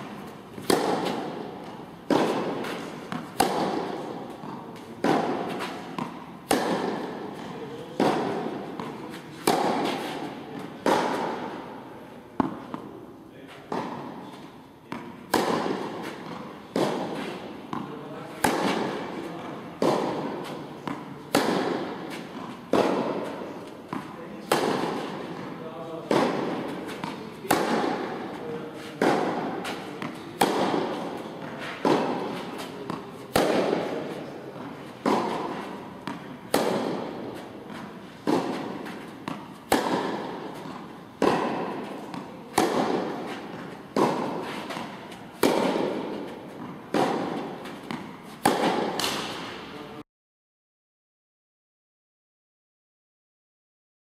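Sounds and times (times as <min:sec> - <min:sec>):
racquet hitting tennis ball: 0:00.0 - 0:49.8.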